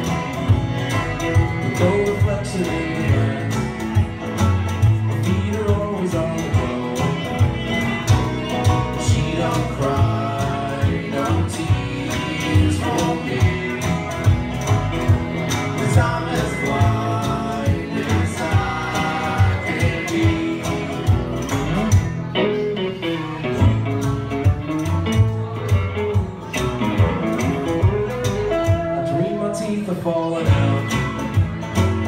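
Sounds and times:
bowed fiddle: 0:00.0 - 0:10.8
bluegrass band playing: 0:00.0 - 0:32.0.

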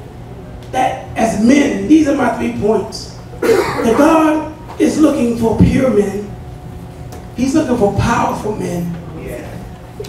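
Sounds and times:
man speaking through a microphone: 0:00.7 - 0:06.4, 0:07.4 - 0:09.7.

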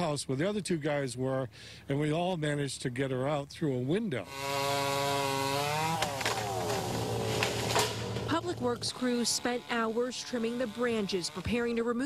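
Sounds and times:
chainsaw cutting branches: 0:04.2 - 0:12.0.

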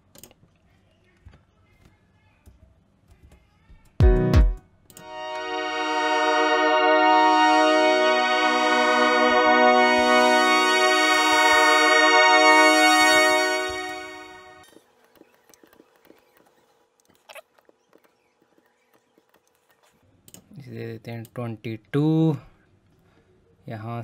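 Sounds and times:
synthesizer pad chord: 0:04.0 - 0:14.6.

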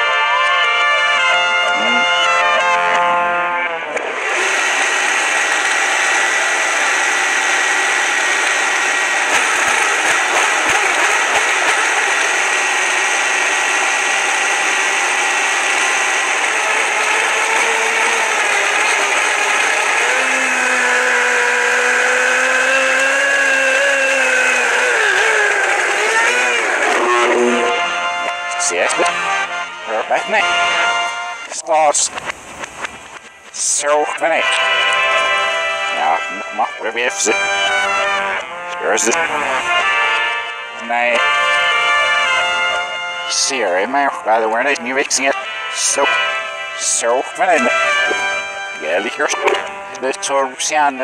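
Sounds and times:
blender motor whine played backwards: 0:01.3 - 0:31.2, 0:34.3 - 0:43.2, 0:45.4 - 0:50.6.

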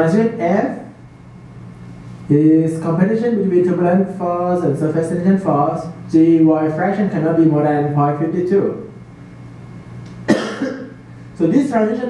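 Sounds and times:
low room hum: 0:00.0 - 0:12.0
person coughing: 0:10.3 - 0:11.0.

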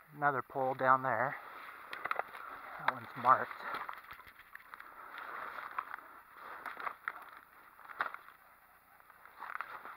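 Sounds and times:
twigs crackling: 0:00.2 - 0:09.9
footsteps in undergrowth: 0:00.8 - 0:09.9.

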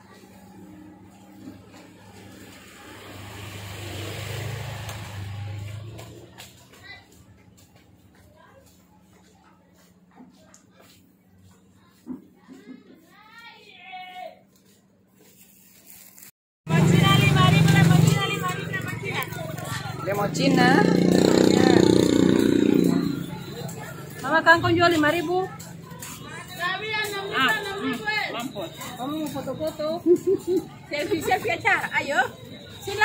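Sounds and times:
motor scooter passing by: 0:00.2 - 0:06.7, 0:16.7 - 0:26.6
people talking: 0:16.7 - 0:33.0.

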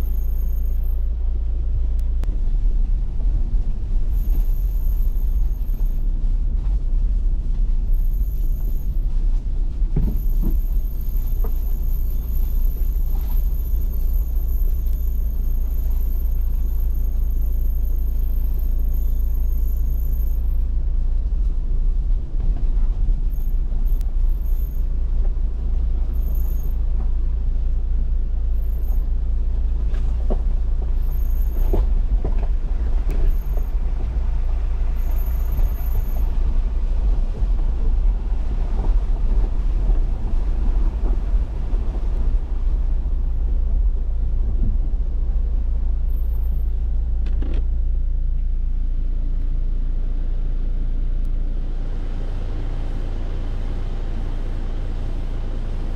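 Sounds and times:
car engine and tyres rumbling: 0:00.0 - 0:55.9.

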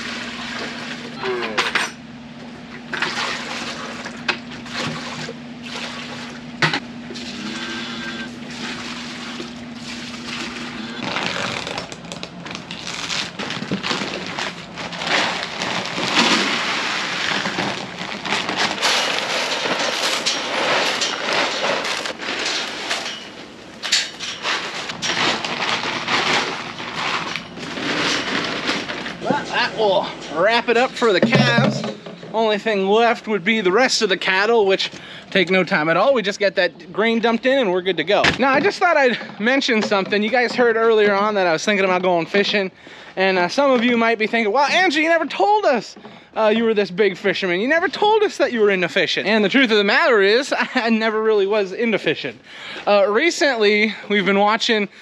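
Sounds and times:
steady low hum: 0:00.0 - 0:43.6
feed pellets pouring into buckets: 0:12.8 - 0:23.1, 0:24.4 - 0:29.2.

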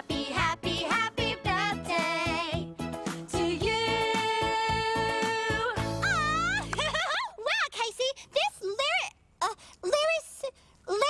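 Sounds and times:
high cartoonish voice: 0:06.0 - 0:11.0.

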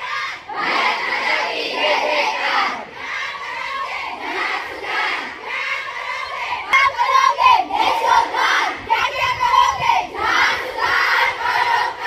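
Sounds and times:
girls shouting slogans together: 0:00.0 - 0:12.0.

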